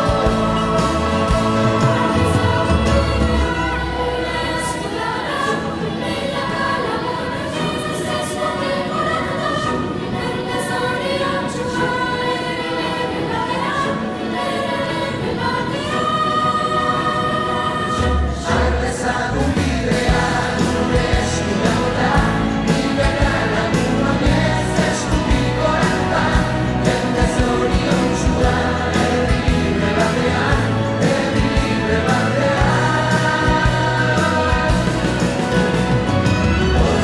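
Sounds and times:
instrumental accompaniment: 0.0s - 5.8s, 18.0s - 37.0s
choir holding long notes: 0.0s - 37.0s.

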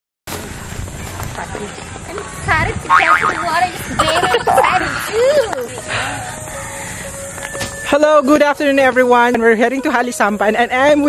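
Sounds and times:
people talking in high voices: 2.4s - 6.1s.

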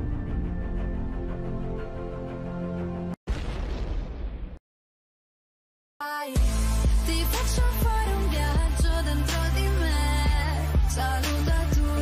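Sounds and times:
background music: 0.0s - 3.2s, 6.3s - 12.0s
boom impact sound effect: 3.3s - 4.6s.

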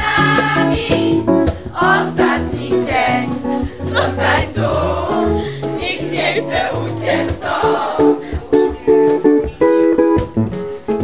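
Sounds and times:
girls singing together: 0.0s - 8.8s.

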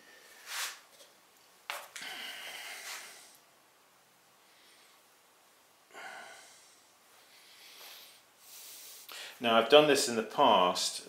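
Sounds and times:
man sniffing: 2.0s - 3.3s, 7.7s - 9.4s
man breathing out: 2.0s - 3.4s, 5.9s - 9.4s.

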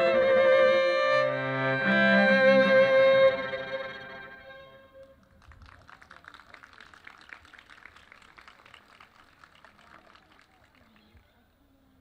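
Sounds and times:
string trio chord: 0.0s - 5.0s
faint scattered clapping: 5.0s - 11.4s.

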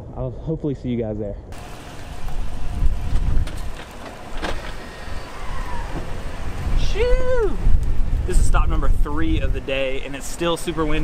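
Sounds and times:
wind buffeting microphone: 1.6s - 11.0s.

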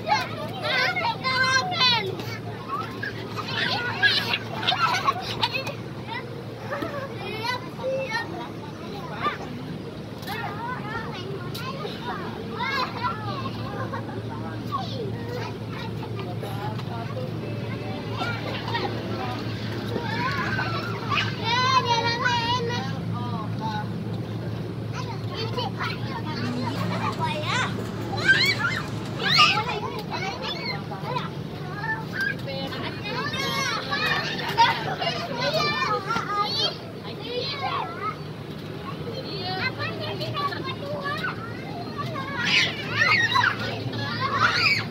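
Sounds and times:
children squealing and calling out: 0.0s - 9.6s, 18.0s - 23.0s, 24.8s - 44.9s
low background hum: 0.0s - 44.9s.

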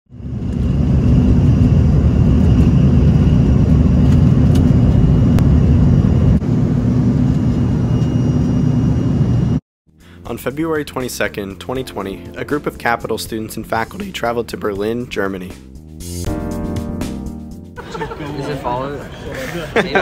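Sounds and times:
faint high whine: 0.2s - 9.6s.

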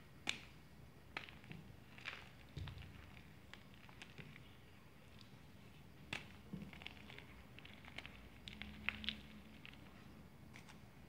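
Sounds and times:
chalk snapping: 0.2s - 2.2s.

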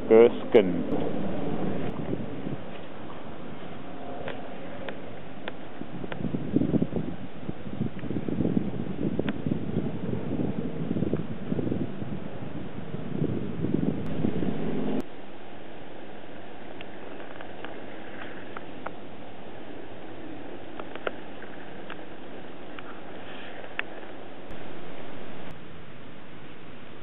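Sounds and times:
wind buffeting microphone: 0.0s - 15.1s.

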